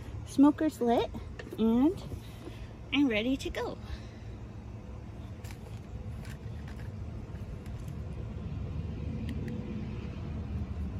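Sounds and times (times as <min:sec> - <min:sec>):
low outdoor rumble: 0:00.0 - 0:10.9.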